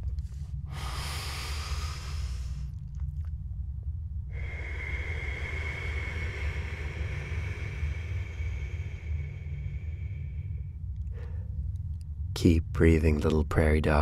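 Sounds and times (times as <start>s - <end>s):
low steady hum: 0.0s - 14.0s
person breathing deeply: 0.2s - 2.8s, 4.3s - 12.3s.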